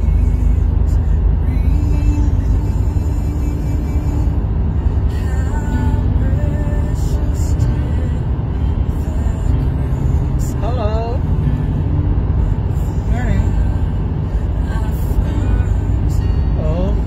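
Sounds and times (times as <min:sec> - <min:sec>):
background music: 0:00.0 - 0:17.0
car driving rumble: 0:00.0 - 0:17.0.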